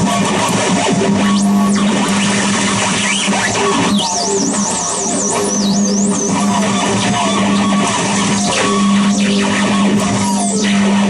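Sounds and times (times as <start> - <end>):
wall of distorted noise: 0.0 - 11.0.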